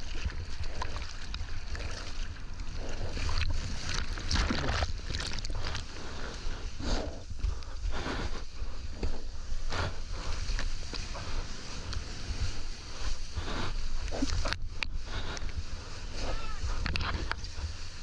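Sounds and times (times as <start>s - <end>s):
arms paddling splashing water: 0.0s - 6.8s
low rumble of water: 0.0s - 18.0s.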